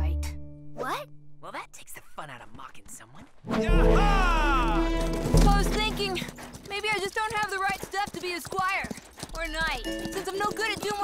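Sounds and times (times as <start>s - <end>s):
person speaking: 0.8s - 11.0s
horse hooves clip-clopping: 5.0s - 11.0s.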